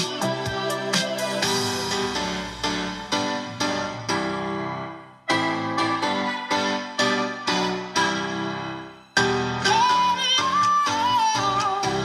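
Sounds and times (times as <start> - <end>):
electronic music with keyboard chords: 0.0 - 12.0.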